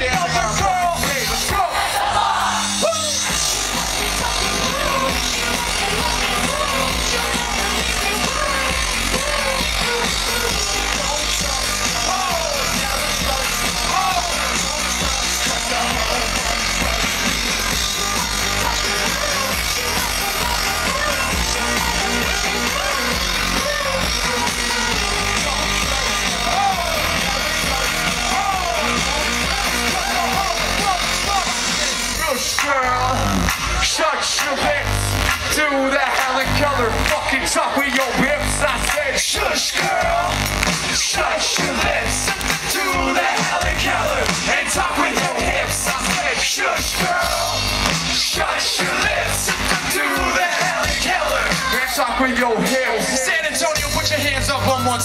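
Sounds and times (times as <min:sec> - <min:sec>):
live electropop music: 0:00.0 - 0:55.0.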